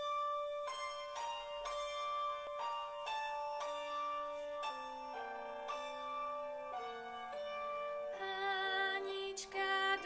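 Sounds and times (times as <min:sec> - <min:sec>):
piano notes and chords: 0:00.0 - 0:10.0.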